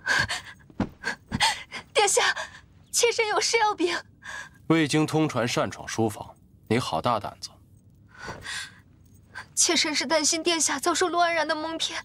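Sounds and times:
soft thuds: 0.7 - 1.4.

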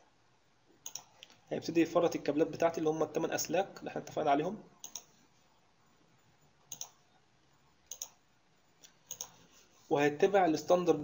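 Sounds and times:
computer mouse clicks: 0.8 - 1.4, 4.8 - 5.2, 6.7 - 7.0, 7.9 - 8.2, 8.8 - 9.4.

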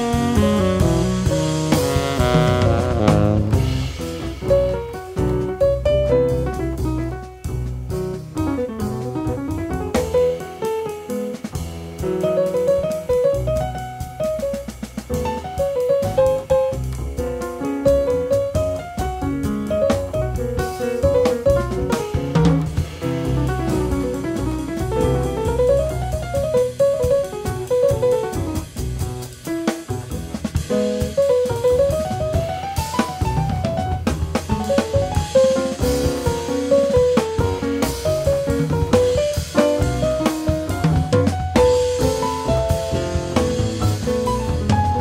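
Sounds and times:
fast melodic line: 0.0 - 28.8, 29.5 - 45.0
double bass: 0.0 - 45.0
drum kit: 0.0 - 45.0.

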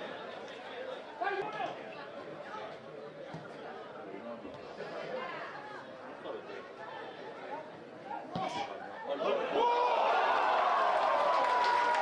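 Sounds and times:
loud shout: 9.2 - 12.0.

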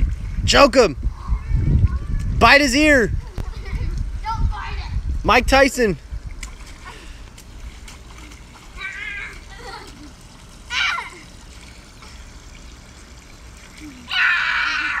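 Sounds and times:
children laughing: 3.2 - 4.1, 8.3 - 11.5, 13.8 - 15.0
water splashing: 5.8 - 15.0
boy shouting: 8.8 - 9.4, 10.7 - 11.2, 13.9 - 15.0
children crying out: 8.8 - 9.9, 10.6 - 11.4, 13.8 - 15.0.

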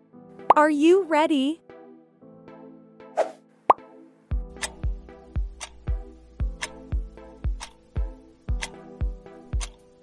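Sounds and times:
background music with kick drum: 3.8 - 10.0.

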